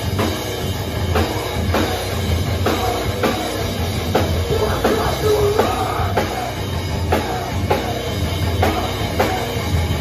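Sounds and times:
bass drum beat: 0:00.0 - 0:10.0
live rock band: 0:00.0 - 0:10.0.

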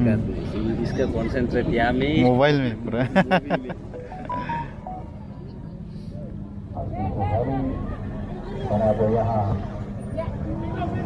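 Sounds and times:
mobile phone beeps: 0:04.0 - 0:05.2.

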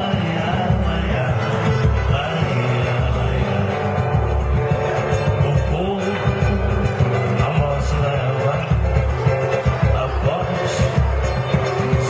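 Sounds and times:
acoustic guitar: 0:00.0 - 0:12.0
live band playing dance music: 0:00.0 - 0:12.0
low bass line: 0:00.0 - 0:12.0.

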